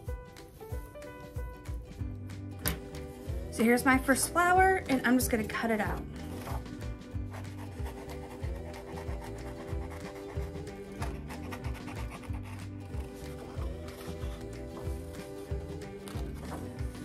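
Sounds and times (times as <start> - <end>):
background music with a beat: 0.0 - 17.0
scissors cutting paper: 6.2 - 17.0.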